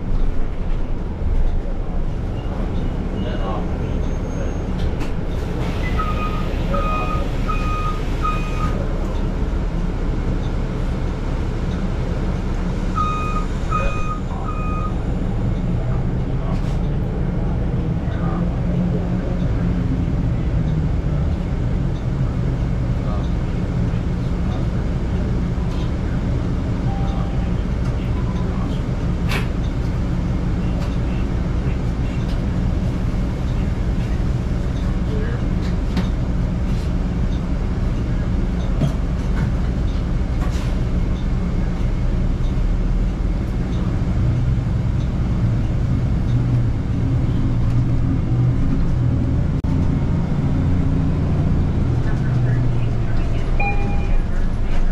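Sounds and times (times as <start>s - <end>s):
bus interior low hum: 0.0s - 54.9s
electronic warning beeps: 5.8s - 8.8s, 13.0s - 15.0s, 53.6s - 54.3s.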